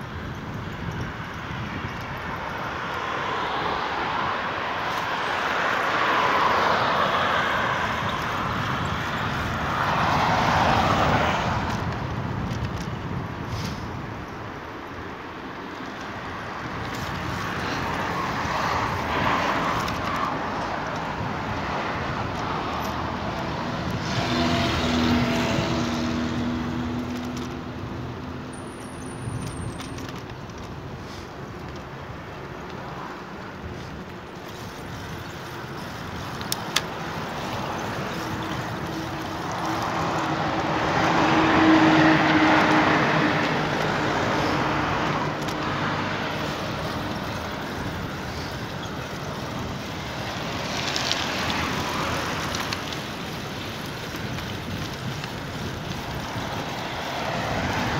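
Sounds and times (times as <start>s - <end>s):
cars passing: 0.0s - 57.9s.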